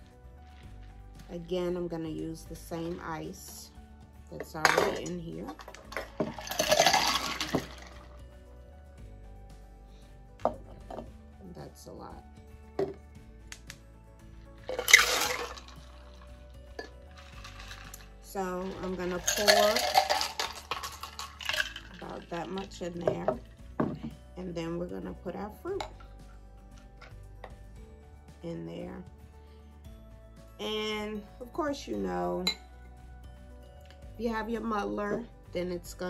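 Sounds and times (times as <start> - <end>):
ice rattling in shaker cup: 4.7 - 8.2, 14.6 - 23.9
drink pouring over ice: 5.6 - 8.2, 14.6 - 23.4.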